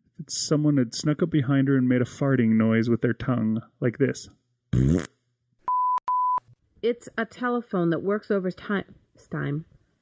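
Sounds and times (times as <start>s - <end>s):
electronic bleep tone: 5.7s - 6.4s.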